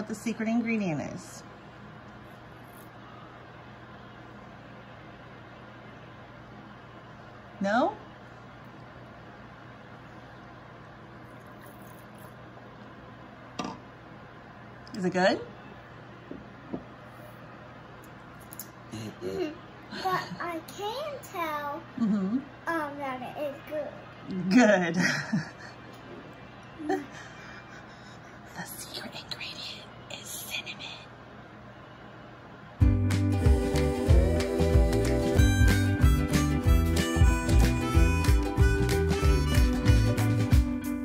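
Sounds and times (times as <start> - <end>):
room hiss: 0.0 - 41.0
person whispering: 28.6 - 31.2.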